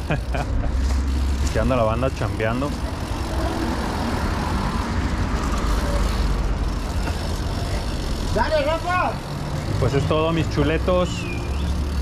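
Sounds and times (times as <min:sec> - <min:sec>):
bike tyres rolling on concrete: 0:00.0 - 0:12.0
street traffic rumble: 0:00.0 - 0:12.0
wind: 0:00.0 - 0:12.0.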